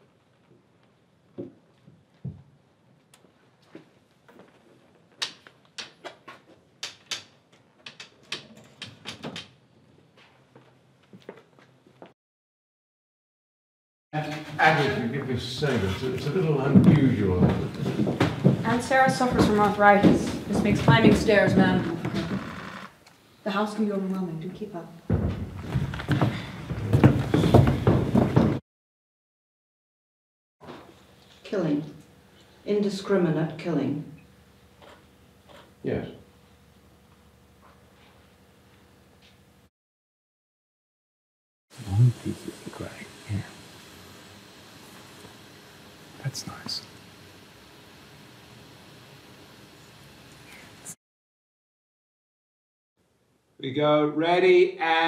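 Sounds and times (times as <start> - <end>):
knocks on hollow wood: 17.4 - 22.2.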